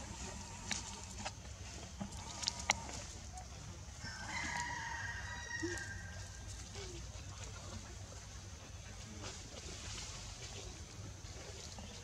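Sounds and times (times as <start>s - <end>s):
light ticks and rustles: 0.0s - 12.0s
rooster crowing: 4.0s - 6.3s.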